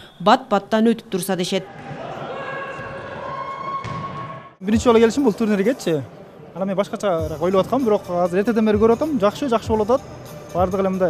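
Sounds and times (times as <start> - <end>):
shoes and ball on indoor floor: 1.7 - 4.4
ball kick: 3.8 - 4.4.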